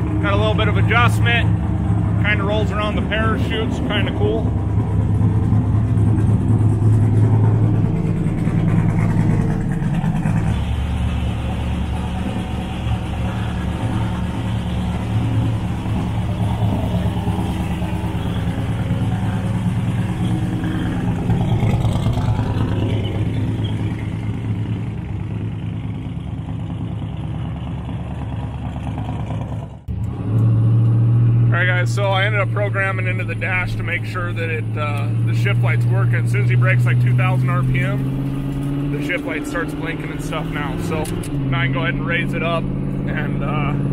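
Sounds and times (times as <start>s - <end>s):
car engine idling choppily: 0.0s - 30.0s, 31.5s - 43.9s.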